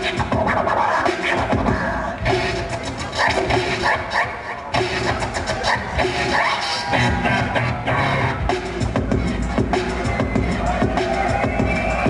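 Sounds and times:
turntable scratching: 0:00.0 - 0:12.0
steady low beat: 0:07.0 - 0:12.0.

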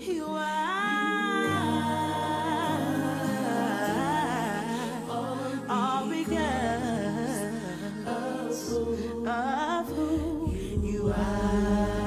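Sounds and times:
person singing with vibrato: 0:00.0 - 0:12.0
sustained keyboard chords: 0:01.0 - 0:12.0.

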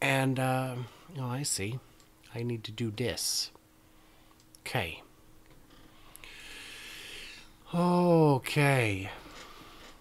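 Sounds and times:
low steady hum: 0:00.0 - 0:10.0
faint breath hiss: 0:05.8 - 0:08.3.

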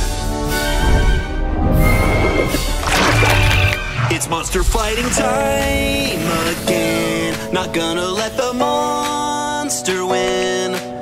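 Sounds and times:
dramatic cartoon music: 0:00.0 - 0:09.1.

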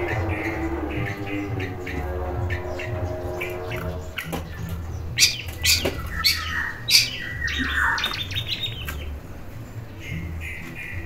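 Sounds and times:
bird chatter: 0:00.0 - 0:11.0
bird harsh calls: 0:00.0 - 0:11.0.

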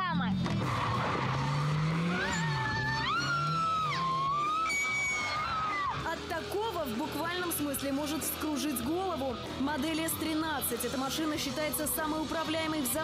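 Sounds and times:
car engine revving: 0:00.0 - 0:13.0
tyres squealing: 0:00.6 - 0:06.1.

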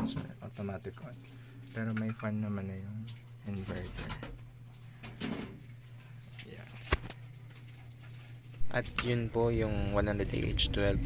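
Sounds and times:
inverter humming: 0:00.0 - 0:11.0.

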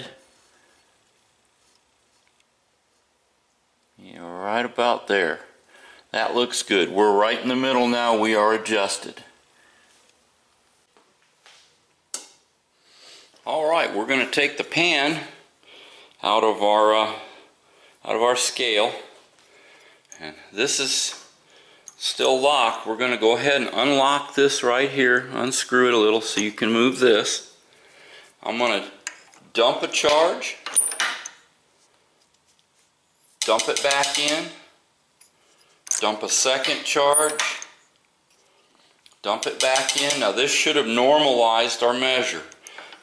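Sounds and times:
man breathing softly: 0:15.4 - 0:16.2, 0:17.2 - 0:18.0, 0:19.4 - 0:20.2, 0:27.7 - 0:28.4.

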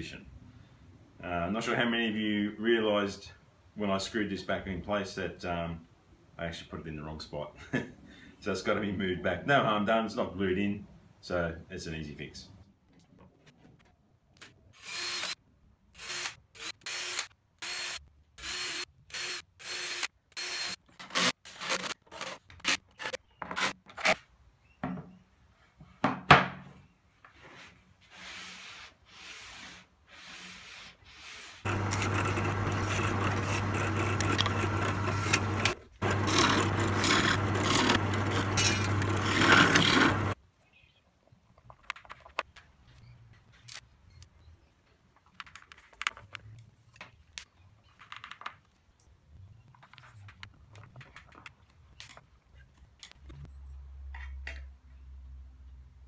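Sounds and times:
cordless drill driving screws: 0:31.7 - 0:40.4
loud machine running: 0:31.7 - 0:40.4.

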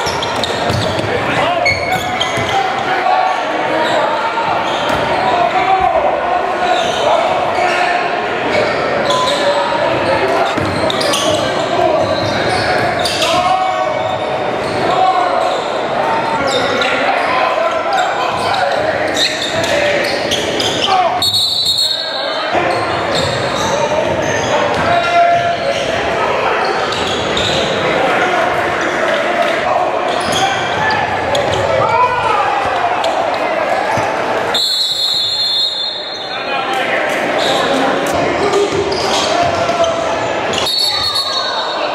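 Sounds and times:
crowd chatter: 0:00.0 - 0:41.9
players' voices: 0:00.0 - 0:41.9.

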